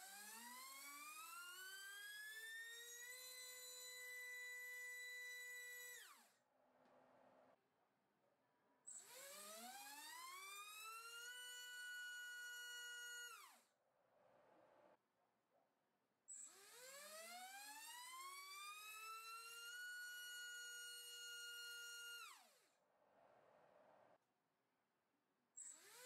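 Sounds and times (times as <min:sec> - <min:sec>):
electric motor whine: 0:00.0 - 0:06.2, 0:09.0 - 0:13.6.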